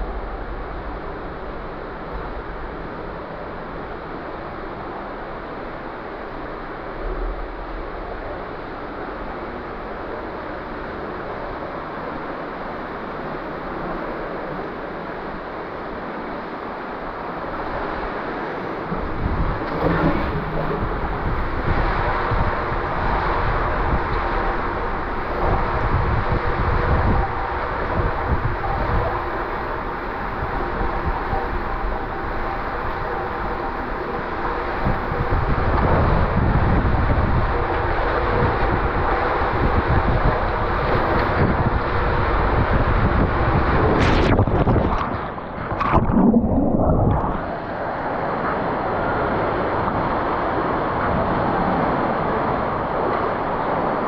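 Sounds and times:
water rushing through slide tube: 18.1 - 26.2, 43.5 - 54.0.

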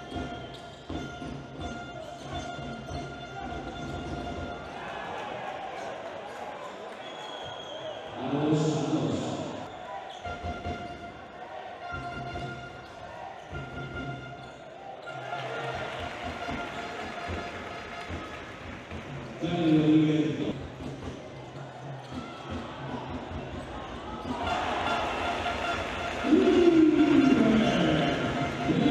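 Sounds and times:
echoing crowd voices: 0.0 - 28.9.

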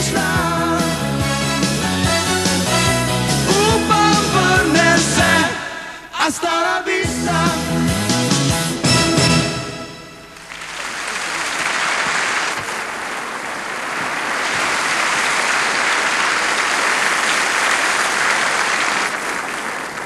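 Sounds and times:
audience applauding: 10.4 - 20.0.

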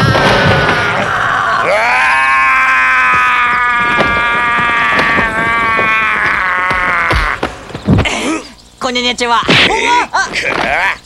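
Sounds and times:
heavy hit: 0.0 - 8.1
sharp blows: 0.0 - 8.6
man's long loud cry: 1.4 - 7.4.

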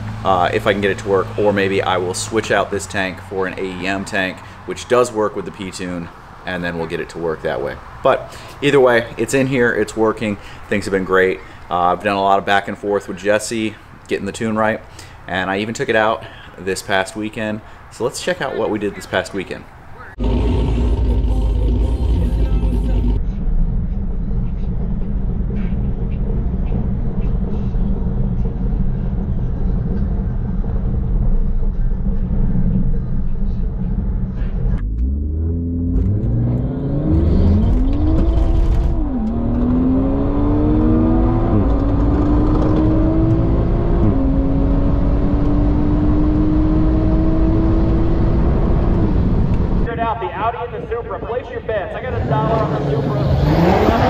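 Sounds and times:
car engine accelerating: 20.1 - 49.9, 52.1 - 54.0.

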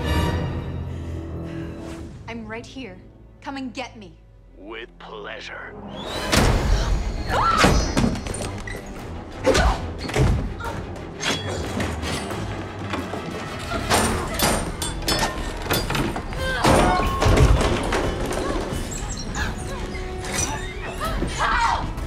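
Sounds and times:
tense film score: 0.0 - 22.0.

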